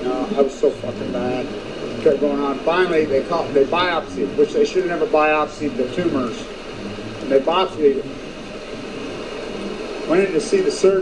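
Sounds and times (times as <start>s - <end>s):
ocean surf rushing: 0.0s - 11.0s.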